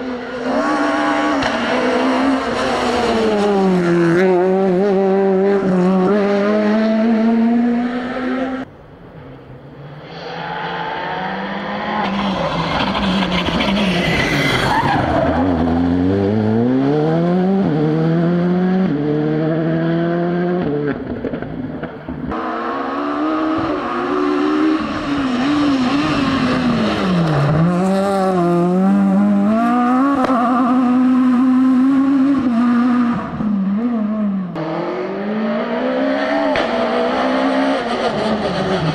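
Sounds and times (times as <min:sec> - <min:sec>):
rally car engines revving: 0:00.0 - 0:38.9.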